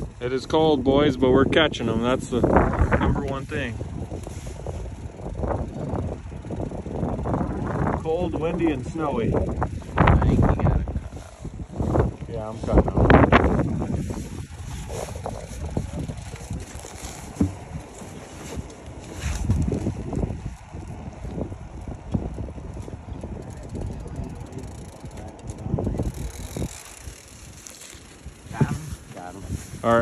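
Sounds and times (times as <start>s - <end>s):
wind buffeting microphone: 0.0s - 30.0s
fishing reel clicking: 22.7s - 28.5s.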